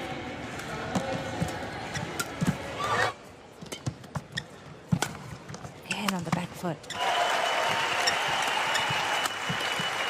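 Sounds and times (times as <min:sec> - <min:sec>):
racket striking shuttlecock: 0:04.9 - 0:05.4.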